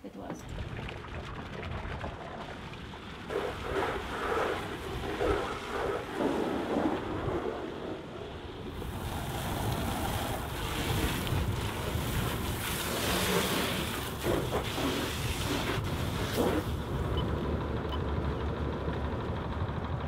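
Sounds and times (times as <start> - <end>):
wind buffeting microphone: 0.4 - 17.2
hose spraying water: 8.8 - 16.7.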